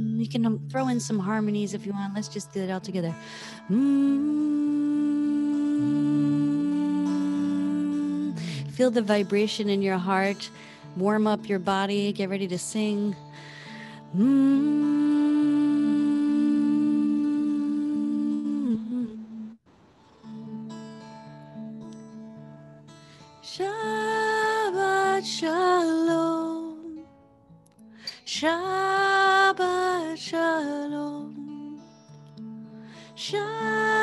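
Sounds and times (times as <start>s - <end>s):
woman singing: 0.0s - 19.6s, 23.4s - 27.1s, 28.1s - 32.0s, 33.0s - 34.0s
acoustic guitar chords: 0.0s - 34.0s
woman humming: 3.7s - 8.7s, 14.1s - 19.6s.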